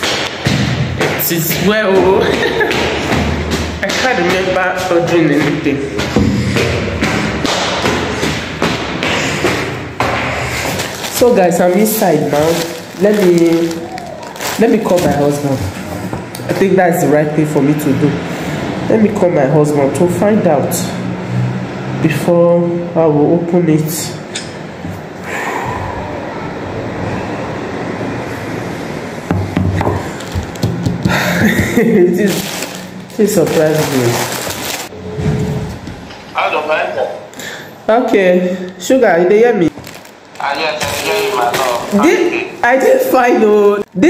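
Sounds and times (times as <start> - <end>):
footsteps on a staircase: 0.0 - 11.0
steady background noise: 0.0 - 44.0
objects being handled: 8.2 - 16.3, 29.4 - 34.9.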